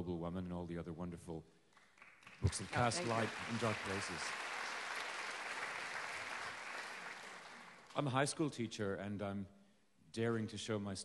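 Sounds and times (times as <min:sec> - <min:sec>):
audience applauding: 0:02.0 - 0:08.1.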